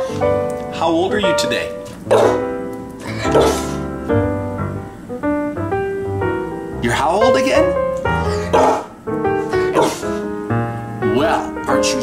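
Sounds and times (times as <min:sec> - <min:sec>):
piano music: 0:00.0 - 0:12.0
dog barking: 0:02.1 - 0:02.5, 0:03.2 - 0:03.8, 0:08.3 - 0:08.9, 0:09.7 - 0:10.0.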